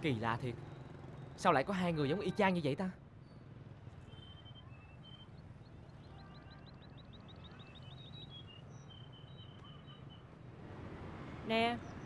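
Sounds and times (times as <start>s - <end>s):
outdoor background noise: 0.0s - 12.0s
small birds chirping: 3.2s - 10.3s.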